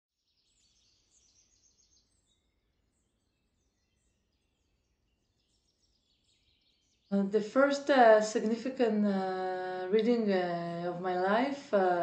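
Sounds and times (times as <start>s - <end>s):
faint birds chirping: 0.2s - 12.0s.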